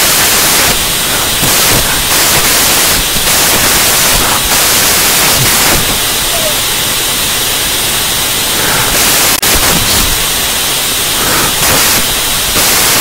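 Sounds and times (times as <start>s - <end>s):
electronic static hiss: 0.0s - 13.0s.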